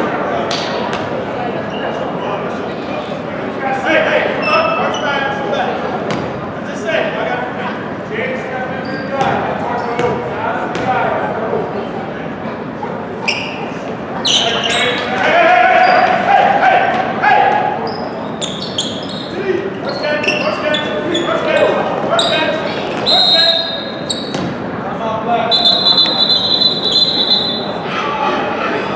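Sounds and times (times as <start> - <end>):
echoing voices in a gym: 0.0 - 28.9
basketball bouncing: 10.0 - 10.9, 24.2 - 24.6
shoe squeaks and knocks: 14.3 - 15.0, 17.9 - 24.6
long high steady tone: 25.5 - 27.9.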